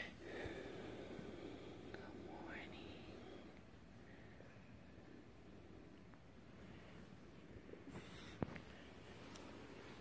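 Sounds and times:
faint whispering: 0.0s - 10.0s.

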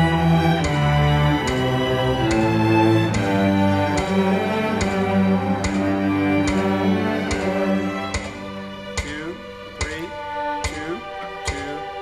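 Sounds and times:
background music: 0.0s - 12.0s
cello bowed notes: 0.0s - 12.0s
steady clicks: 0.1s - 12.0s.

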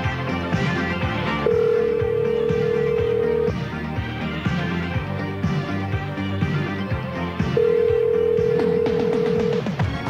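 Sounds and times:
song playing: 0.0s - 10.0s
telephone ringback tone: 1.4s - 3.6s, 7.5s - 9.7s.

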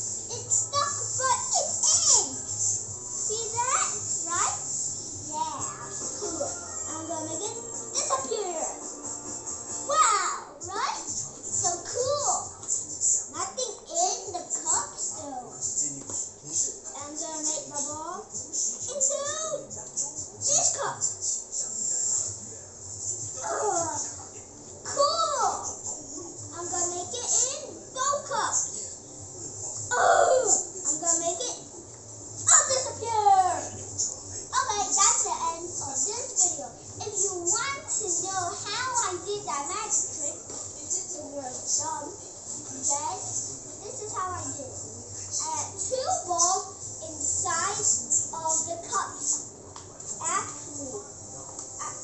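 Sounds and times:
young boy's high-pitched voice: 9.9s - 11.1s, 32.5s - 33.7s.

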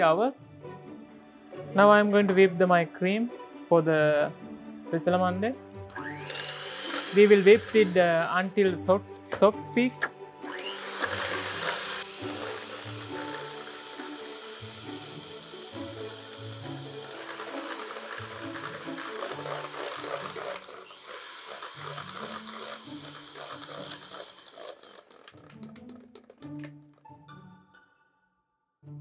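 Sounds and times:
background music: 0.0s - 29.0s
electric hand mixer running: 5.9s - 8.8s, 10.4s - 26.7s.

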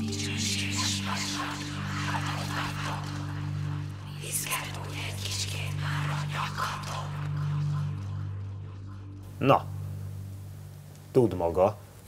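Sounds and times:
voices whispering: 0.0s - 3.4s
low drone: 0.0s - 11.0s.

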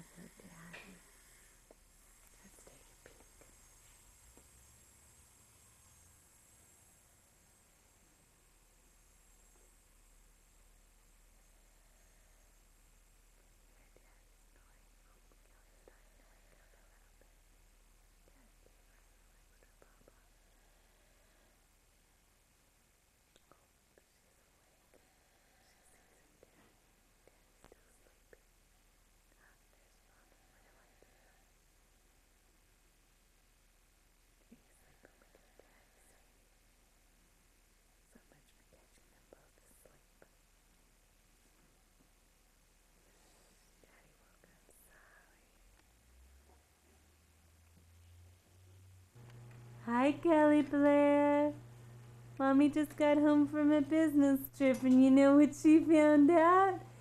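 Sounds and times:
faint whispering: 0.0s - 4.0s, 11.0s - 21.7s, 23.3s - 28.6s, 29.3s - 31.7s, 34.4s - 36.6s, 38.0s - 40.5s, 43.0s - 47.0s
videotape hiss: 0.0s - 57.0s.

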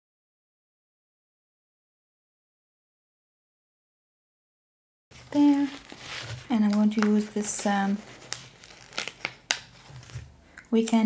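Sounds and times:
sticker sheets crinkling: 5.1s - 11.0s
sticker peeled from backing: 5.2s - 10.2s.

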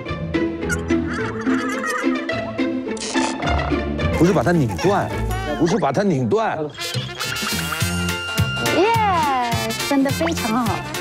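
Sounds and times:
playful background music: 0.0s - 11.0s.

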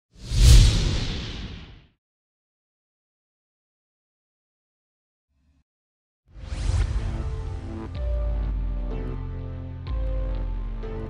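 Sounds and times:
whoosh: 0.2s - 1.9s.

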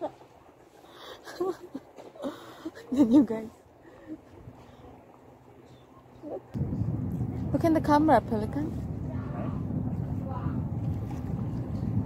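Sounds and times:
wind buffeting microphone: 6.5s - 12.0s.

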